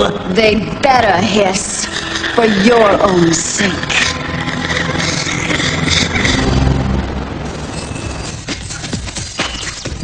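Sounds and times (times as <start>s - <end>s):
cartoon soundtrack music: 2.0s - 10.0s
low vehicle rumble: 3.1s - 8.9s.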